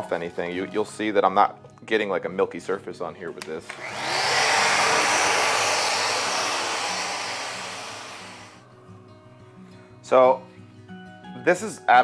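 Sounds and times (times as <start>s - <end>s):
rotary sander running: 3.6s - 8.6s.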